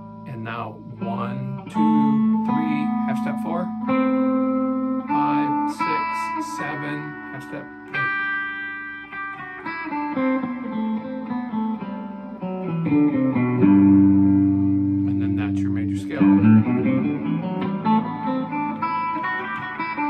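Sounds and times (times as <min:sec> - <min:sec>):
electric guitar picking scale notes: 0:00.0 - 0:20.0
low ringing guitar chord: 0:00.0 - 0:20.0.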